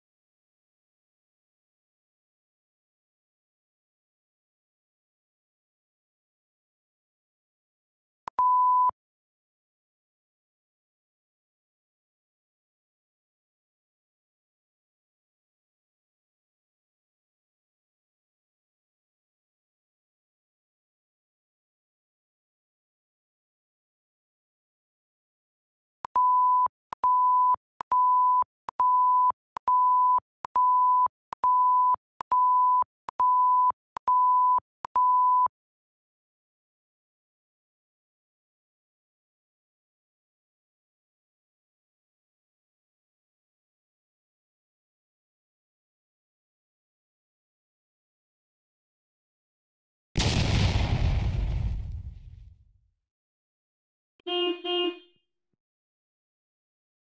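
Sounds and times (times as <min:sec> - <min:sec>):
explosion blast: 0:50.2 - 0:52.6.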